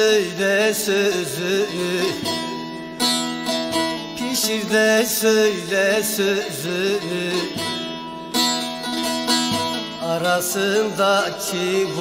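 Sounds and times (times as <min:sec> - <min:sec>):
person singing: 0:00.0 - 0:02.7, 0:04.2 - 0:07.9, 0:09.5 - 0:12.0
plucked long-necked lute: 0:00.0 - 0:12.0.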